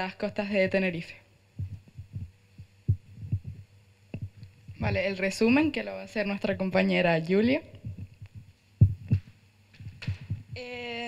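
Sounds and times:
microphone handling thumps: 1.6 - 5.1, 7.7 - 10.6.

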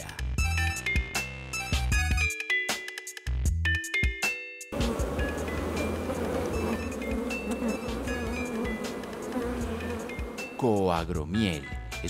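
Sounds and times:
honeybees buzzing: 4.7 - 10.8
light chime-like music: 10.5 - 12.0.

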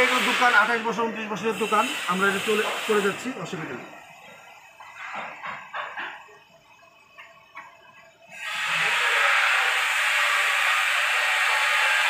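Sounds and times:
loud steady hiss: 0.0 - 4.1, 8.3 - 12.0.

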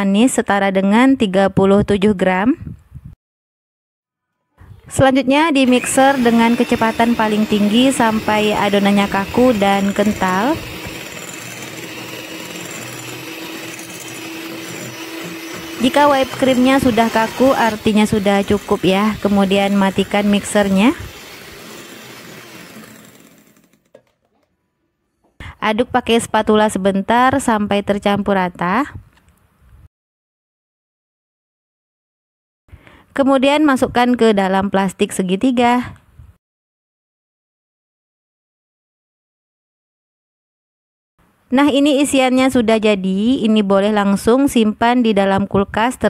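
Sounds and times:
electric hand mixer whirring: 5.6 - 24.4.

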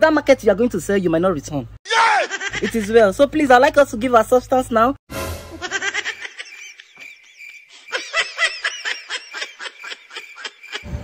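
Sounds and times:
high-pitched snickering laughter: 5.6 - 11.0.

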